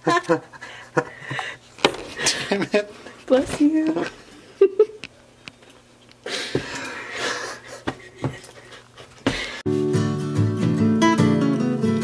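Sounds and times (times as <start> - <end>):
breathy laughter: 0.0 - 1.6, 6.8 - 9.1.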